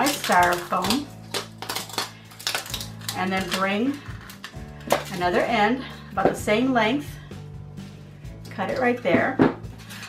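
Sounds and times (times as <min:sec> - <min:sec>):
wire clicking and rustling: 0:00.0 - 0:05.4
background music low tones: 0:00.0 - 0:10.0.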